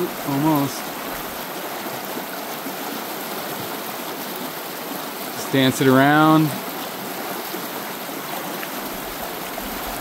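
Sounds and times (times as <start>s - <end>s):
creek running over rocks: 0.0s - 10.0s.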